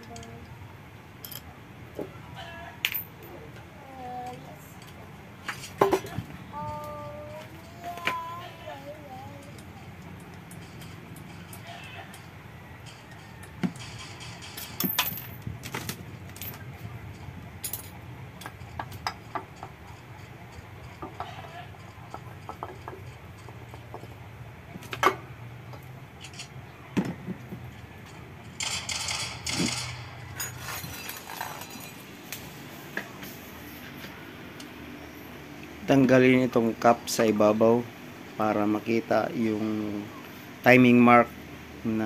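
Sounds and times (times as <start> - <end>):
metallic clicks and knocks: 9.4 - 24.2
metal scraping: 28.6 - 32.3.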